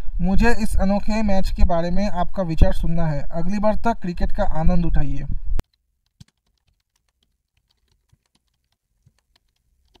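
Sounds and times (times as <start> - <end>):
faint clicks: 5.7 - 10.0.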